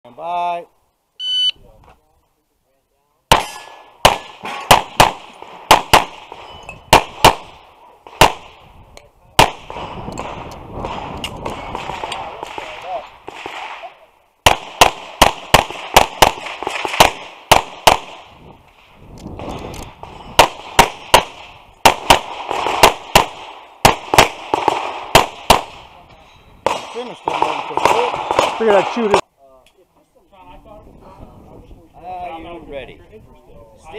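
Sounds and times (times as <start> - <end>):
pistol shots fired rapidly: 3.3 - 6.3, 6.9 - 7.6, 14.5 - 18.2, 20.4 - 25.8.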